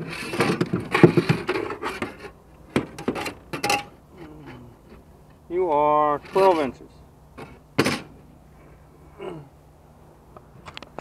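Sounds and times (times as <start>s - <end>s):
clattering and knocks of handling: 0.2s - 6.7s.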